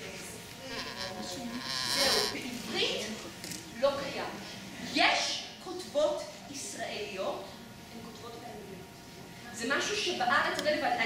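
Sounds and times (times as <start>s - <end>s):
indistinct voices in a large hall: 0.0s - 11.0s.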